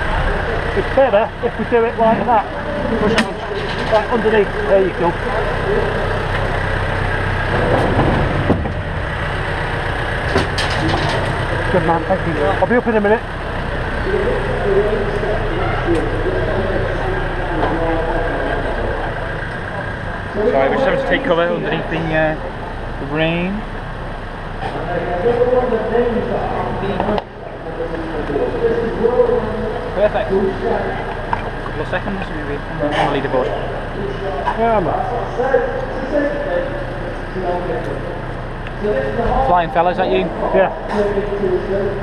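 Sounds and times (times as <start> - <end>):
background voices talking: 0.0 - 42.0
vehicle engine idling: 0.0 - 42.0.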